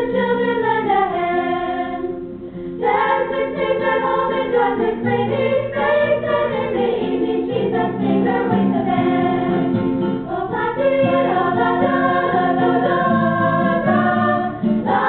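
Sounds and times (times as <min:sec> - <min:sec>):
girls' choir singing in harmony: 0:00.0 - 0:02.2, 0:02.8 - 0:15.0
acoustic guitar accompaniment: 0:00.0 - 0:15.0.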